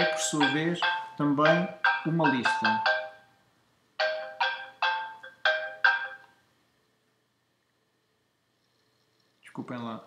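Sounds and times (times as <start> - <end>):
mobile phone ringtone: 0.0 - 3.4, 4.0 - 6.4.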